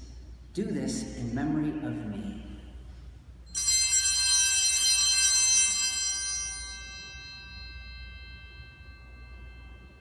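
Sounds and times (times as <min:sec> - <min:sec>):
altar bell ringing: 0:03.4 - 0:10.0.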